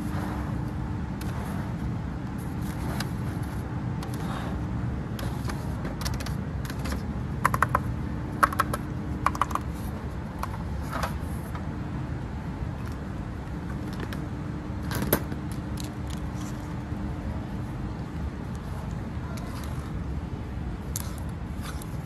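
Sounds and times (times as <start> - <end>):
low background hum: 0.0 - 22.0
fingertips tapping plastic helmets: 6.0 - 9.7.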